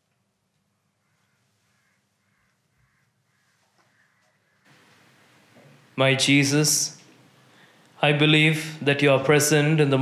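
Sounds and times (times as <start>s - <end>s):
background hiss: 0.0s - 10.0s
distant bird calls: 0.6s - 6.0s.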